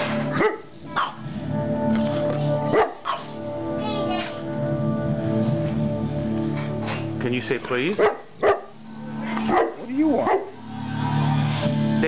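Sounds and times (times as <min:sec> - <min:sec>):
television music: 0:00.0 - 0:12.0
large dog barking: 0:00.4 - 0:01.2, 0:02.7 - 0:03.3, 0:08.0 - 0:08.8, 0:09.4 - 0:10.6.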